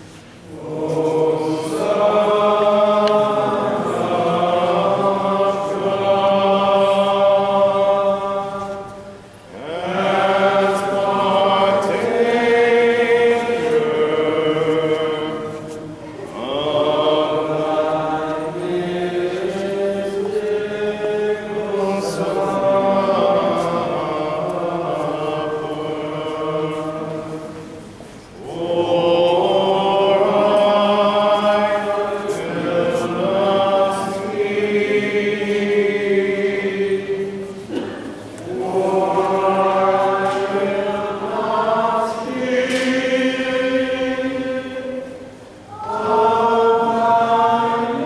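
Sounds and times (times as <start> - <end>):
liturgical chant singing: 0.0 - 48.0.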